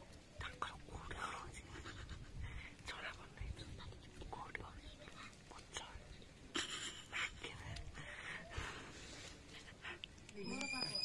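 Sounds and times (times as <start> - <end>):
people whispering: 0.0 - 11.0.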